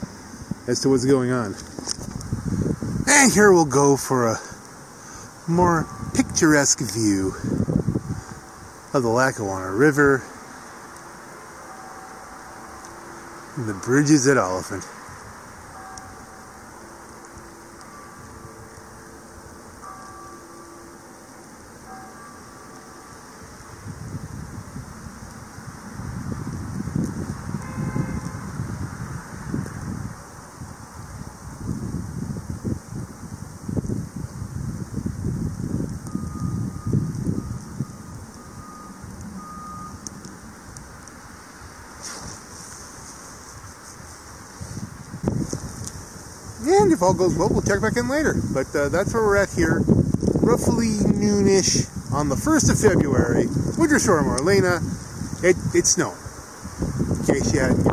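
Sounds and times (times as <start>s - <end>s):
wind buffeting microphone: 0.0s - 57.9s
faint repeated beeps: 36.1s - 40.0s.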